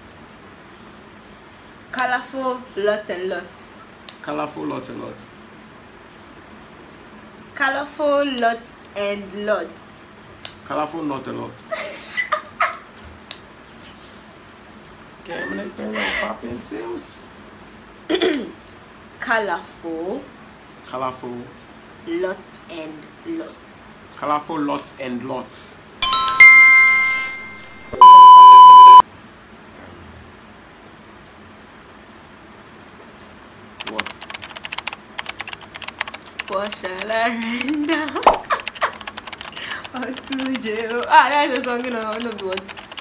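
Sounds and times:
loud steady beep tone: 0:26.0 - 0:29.0.

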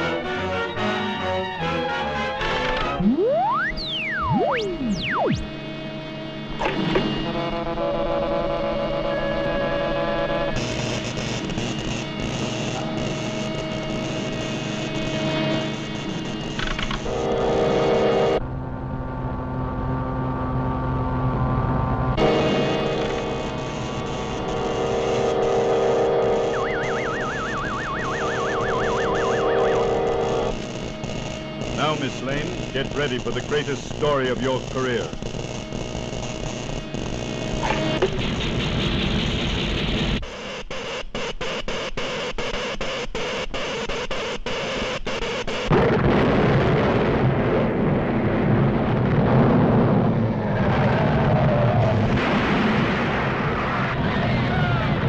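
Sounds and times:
electrical machine hum and buzz: 0:00.0 - 0:53.5
warbling tone: 0:02.8 - 0:05.6, 0:25.0 - 0:30.5
whistling glides: 0:02.9 - 0:05.5.

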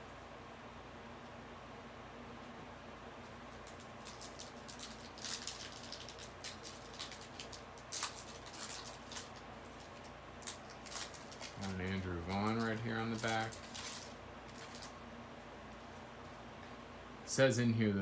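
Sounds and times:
foil wrapper crinkling: 0:03.3 - 0:15.0.

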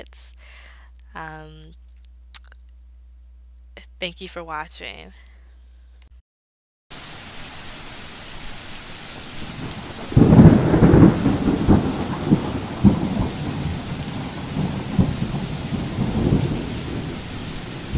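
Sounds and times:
steady rain: 0:06.9 - 0:17.9
thunder peal rolling: 0:09.4 - 0:17.9.

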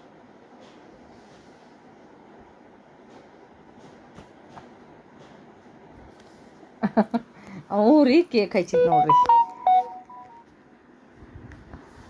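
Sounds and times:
short electronic beeps: 0:08.8 - 0:10.4.

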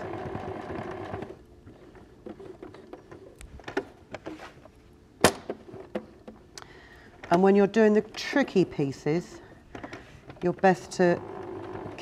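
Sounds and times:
sewing machine stitching: 0:10.5 - 0:12.0.

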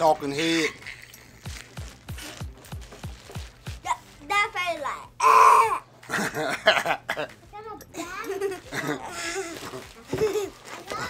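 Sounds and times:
girl shrieking: 0:05.2 - 0:05.9.

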